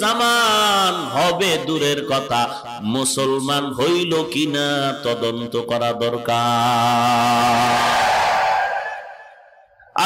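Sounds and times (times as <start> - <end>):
man chanting through loudspeakers: 0.0 - 8.0.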